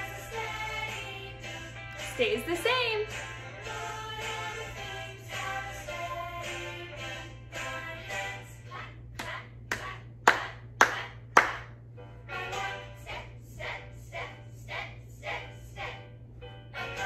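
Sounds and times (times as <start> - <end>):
children's song: 0.0 - 17.0
hand claps: 9.2 - 11.7.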